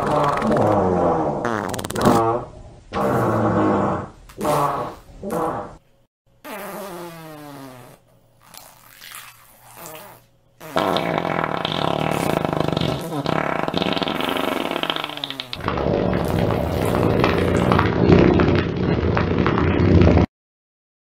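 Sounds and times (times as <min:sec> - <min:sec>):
long loud farts: 0:00.0 - 0:05.8, 0:06.4 - 0:20.3.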